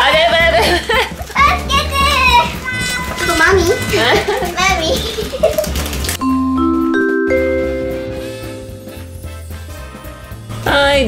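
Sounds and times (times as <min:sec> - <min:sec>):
light background music: 0:00.0 - 0:11.0
excited children's voices: 0:00.6 - 0:05.5.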